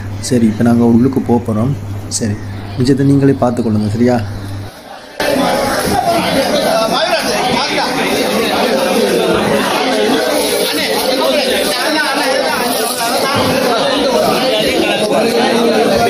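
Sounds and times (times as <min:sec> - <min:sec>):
crowd chatter in echoing hall: 0:00.0 - 0:16.0.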